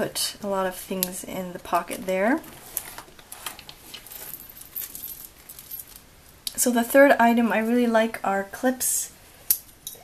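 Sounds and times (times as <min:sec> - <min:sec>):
rustles: 0:02.4 - 0:06.1
small metallic jingles: 0:03.9 - 0:06.1, 0:09.5 - 0:10.0.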